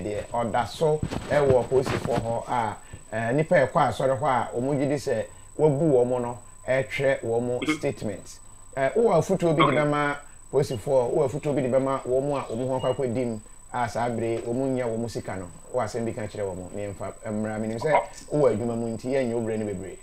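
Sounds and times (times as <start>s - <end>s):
faint high-pitched whine: 0.0s - 20.0s
man speaking: 0.0s - 20.0s.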